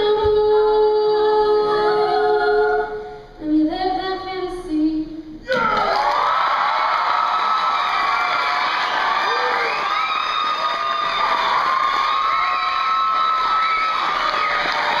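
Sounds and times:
audience cheering and screaming: 0:05.5 - 0:15.0.

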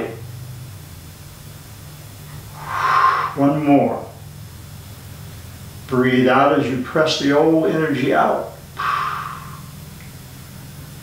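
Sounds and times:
steady low hum: 0:00.0 - 0:11.0
man breathing out: 0:02.5 - 0:03.4, 0:08.8 - 0:09.8.

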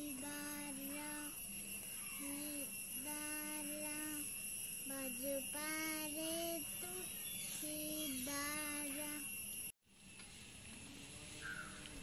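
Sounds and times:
child singing slow melody: 0:00.0 - 0:01.4, 0:02.2 - 0:09.3
faint high-pitched whine: 0:00.0 - 0:12.0.

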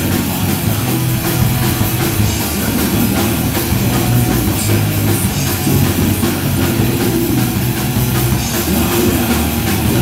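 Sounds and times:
bass guitar: 0:00.0 - 0:10.0
distorted electric guitars: 0:00.0 - 0:10.0
drum kit: 0:00.0 - 0:10.0.

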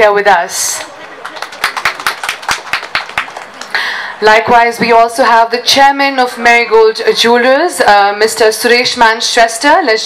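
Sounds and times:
audience clapping: 0:00.7 - 0:03.8.

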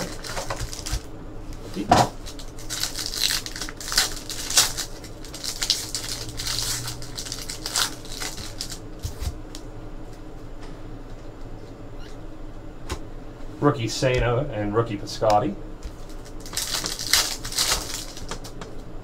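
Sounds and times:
card pack wrappers crinkling and tearing: 0:00.0 - 0:01.1, 0:02.1 - 0:09.6, 0:15.9 - 0:18.8
cards rustling: 0:02.2 - 0:09.6, 0:15.9 - 0:18.6.

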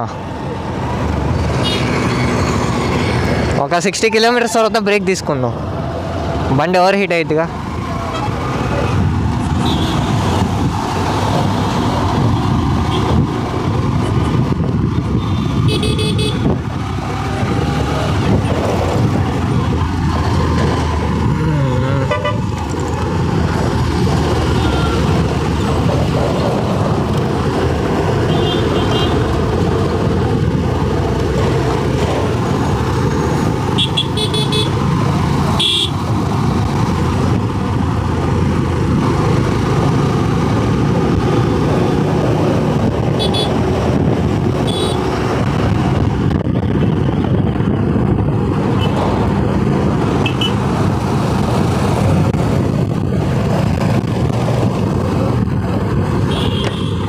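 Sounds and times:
motorcycle road and wind noise: 0:00.0 - 0:57.0
vehicle horn toots: 0:33.8 - 0:34.8, 0:35.6 - 0:36.0, 0:43.2 - 0:43.5, 0:56.3 - 0:57.0.

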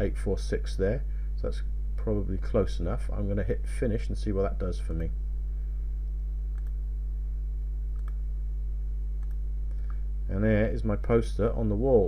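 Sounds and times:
low electrical hum: 0:00.0 - 0:12.0
faint mouse clicks: 0:06.5 - 0:06.8, 0:07.9 - 0:08.2, 0:09.2 - 0:10.0.

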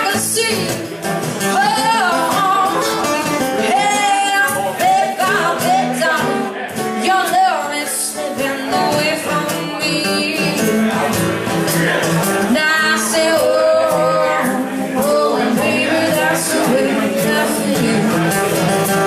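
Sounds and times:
woman singing: 0:00.0 - 0:10.8, 0:12.5 - 0:18.5
strummed acoustic guitars: 0:00.0 - 0:19.0.

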